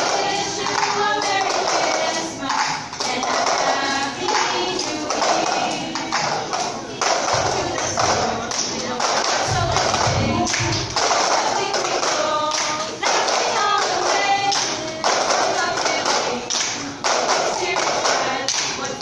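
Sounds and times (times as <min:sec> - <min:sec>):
people singing: 0:00.0 - 0:19.0.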